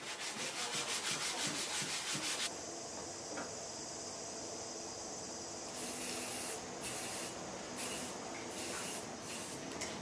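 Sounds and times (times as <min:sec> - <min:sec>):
aerosol spray can hissing: 0:05.8 - 0:09.6.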